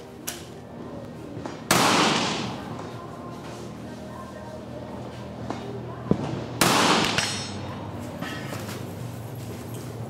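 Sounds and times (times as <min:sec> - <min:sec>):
rifle shot with echo: 0:01.6 - 0:02.7, 0:06.1 - 0:07.6.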